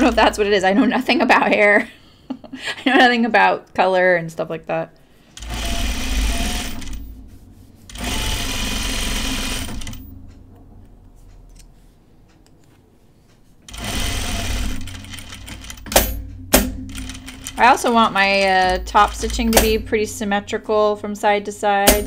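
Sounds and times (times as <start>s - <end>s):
sewing machine stitching: 0.0s - 0.5s, 5.4s - 7.1s, 7.9s - 10.1s, 13.7s - 16.1s, 16.9s - 20.0s.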